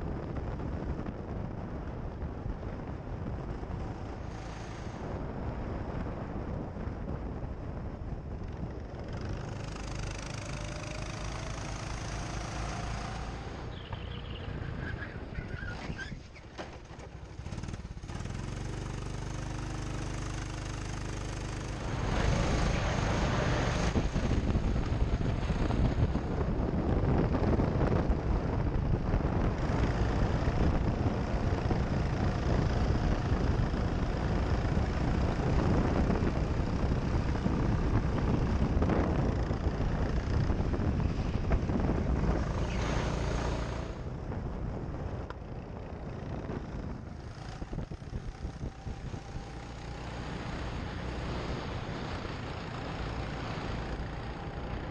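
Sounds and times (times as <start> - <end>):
go-kart engine running: 0.0 - 54.9.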